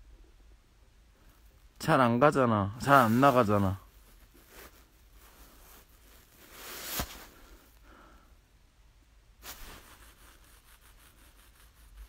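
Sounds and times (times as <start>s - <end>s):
faint scratchy rubbing: 2.8s - 7.8s, 9.4s - 12.0s.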